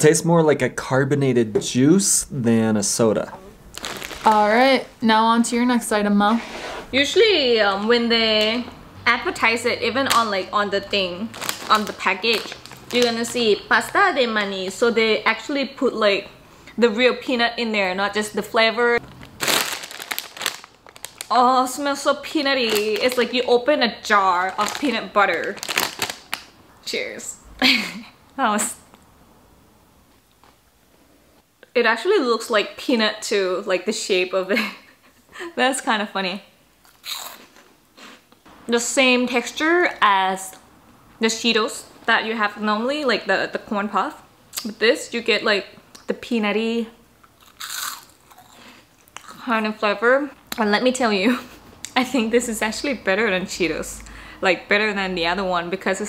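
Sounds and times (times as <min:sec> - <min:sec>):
snack bag crinkling: 0:03.7 - 0:04.5, 0:11.2 - 0:14.8, 0:19.0 - 0:23.6, 0:24.3 - 0:26.6, 0:47.4 - 0:49.4
crunchy snack being bitten: 0:36.8 - 0:37.6, 0:47.3 - 0:49.4
crunching chews: 0:47.2 - 0:49.4.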